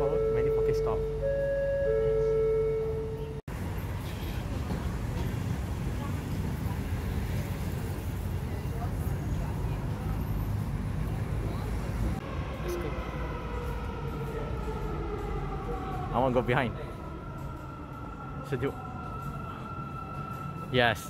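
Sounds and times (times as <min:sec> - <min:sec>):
metro train humming: 0:00.0 - 0:21.0
traffic rumble: 0:00.0 - 0:21.0.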